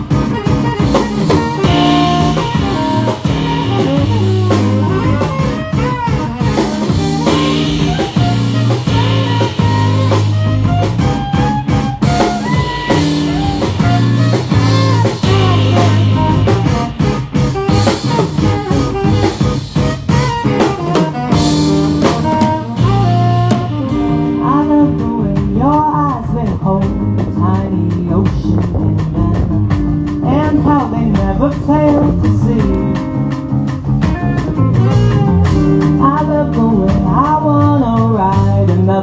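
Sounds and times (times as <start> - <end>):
saxophone melody: 0.0 - 37.7
bass guitar: 0.0 - 39.0
drum kit: 0.0 - 39.0
electric guitar: 0.0 - 39.0.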